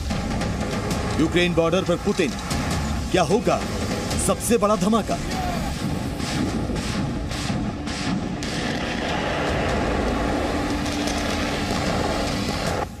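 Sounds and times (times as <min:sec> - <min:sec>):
heavy vehicle rumble: 0:00.0 - 0:13.0.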